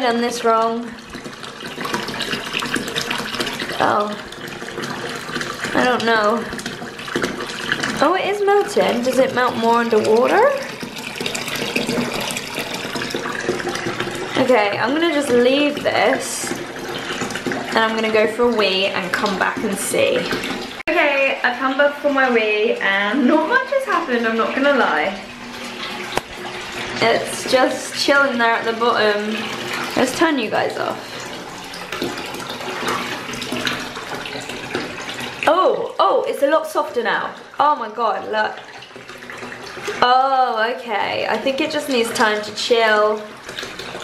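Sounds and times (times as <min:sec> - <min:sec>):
bathwater sloshing and splashing: 0:00.0 - 0:44.0.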